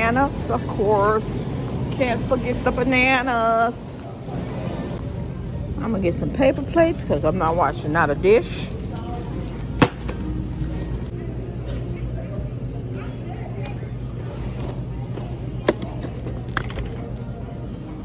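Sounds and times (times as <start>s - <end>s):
store background hum: 0.0s - 18.0s.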